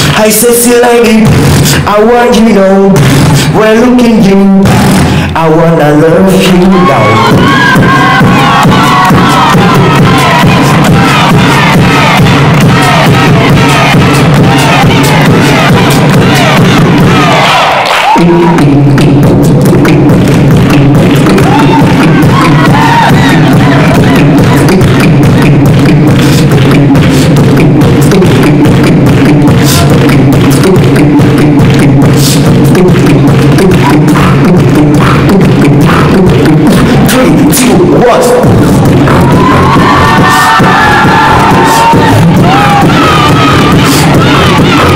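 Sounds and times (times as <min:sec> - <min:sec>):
person beatboxing: 0:00.0 - 0:17.4, 0:18.0 - 0:44.9
crowd cheering: 0:06.3 - 0:44.9.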